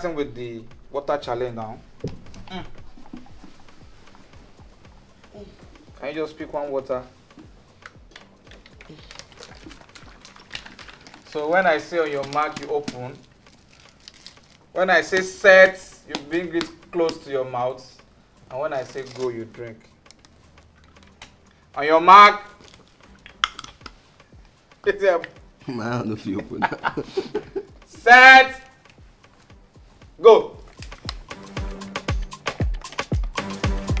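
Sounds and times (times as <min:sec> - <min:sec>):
plastic bottles clicking and crackling: 0:07.8 - 0:15.4, 0:22.6 - 0:24.0.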